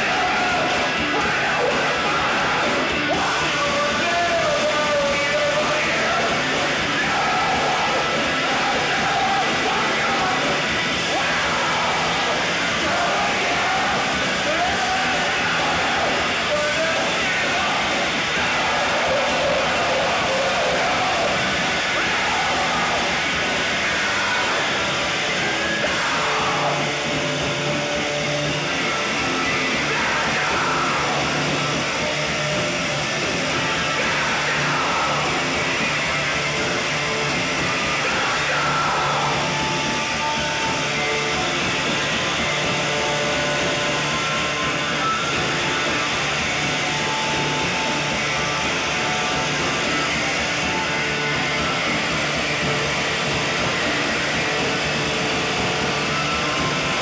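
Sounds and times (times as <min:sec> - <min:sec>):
live noise-rock band: 0:00.0 - 0:57.0.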